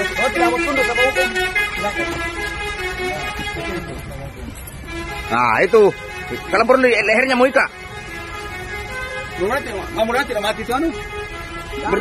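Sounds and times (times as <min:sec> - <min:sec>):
men talking over one another: 0:00.0 - 0:07.8.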